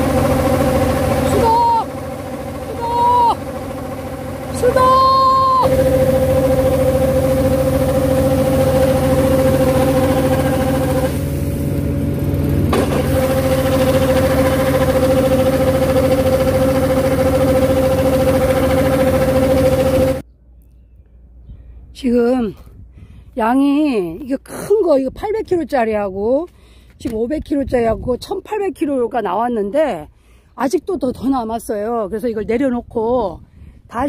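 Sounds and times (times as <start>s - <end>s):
auger discharging grain: 0.0s - 20.2s
combine harvester whining: 0.0s - 20.2s.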